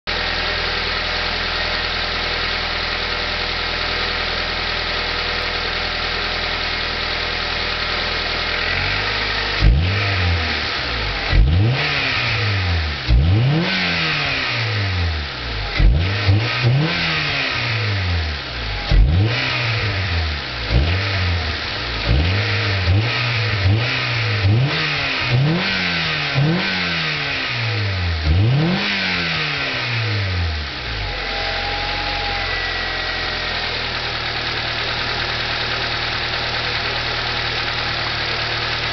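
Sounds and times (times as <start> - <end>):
car engine idling and revving: 0.0 - 38.9.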